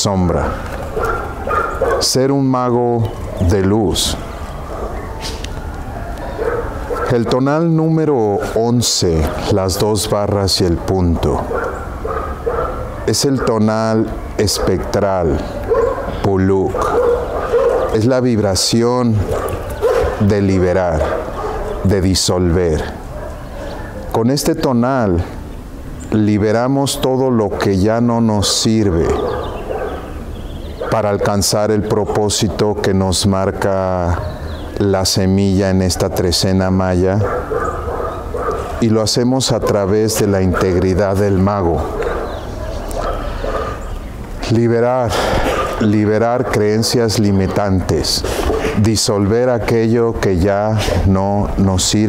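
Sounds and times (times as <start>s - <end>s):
dog faint vocal sound: 19.2s - 21.9s, 39.6s - 44.0s, 45.1s - 46.9s, 48.1s - 48.9s.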